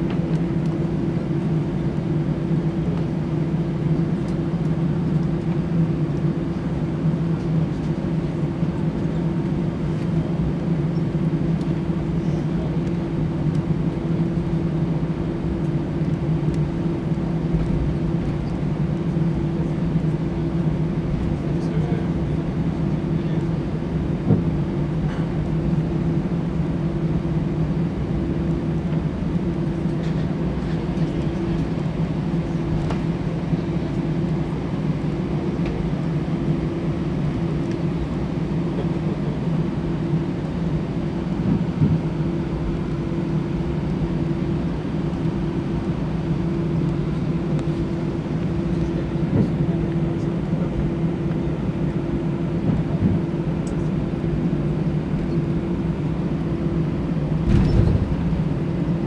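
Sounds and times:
aircraft cabin drone: 0.0 - 59.0.

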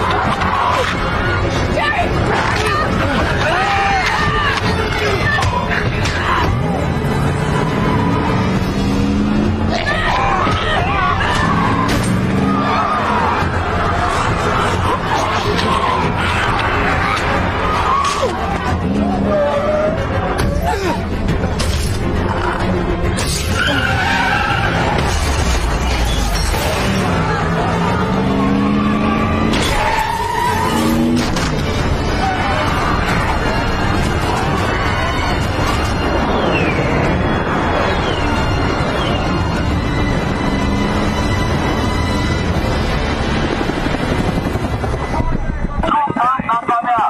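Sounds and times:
tires squealing in a skid: 9.8 - 20.2, 23.3 - 31.5
helicopter flying overhead: 31.6 - 46.6.

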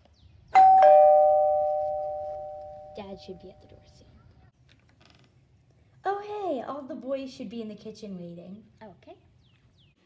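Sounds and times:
two-tone doorbell chime: 0.6 - 3.4.

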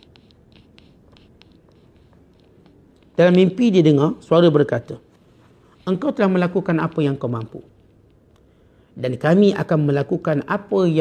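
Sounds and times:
paper rustling with ticks: 0.0 - 3.8.

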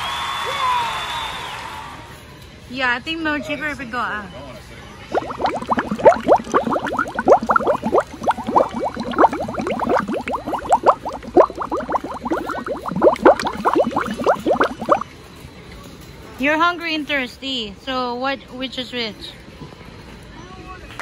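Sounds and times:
liquid bubbling rapidly: 5.1 - 15.0.

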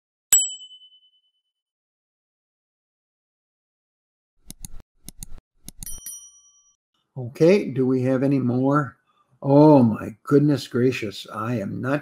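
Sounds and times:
bell-like ding chime: 0.3 - 1.4, 5.8 - 6.8.

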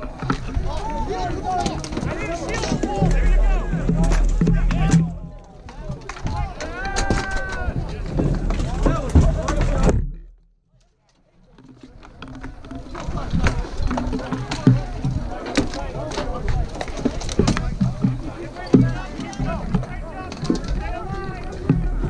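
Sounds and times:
many voices shouting: 0.0 - 9.8, 18.2 - 22.0.

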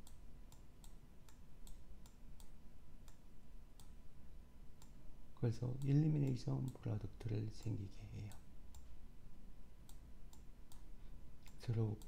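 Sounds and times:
low steady hum: 0.0 - 12.0
faint sharp clicks: 3.8 - 4.0, 9.8 - 12.0
person speaking: 5.4 - 8.5, 11.4 - 12.0.

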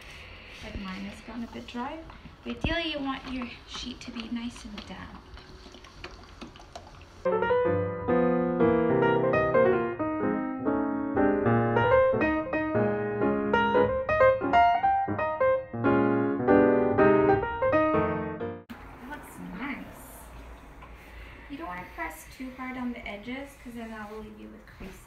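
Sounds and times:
lively piano music: 7.3 - 18.7.

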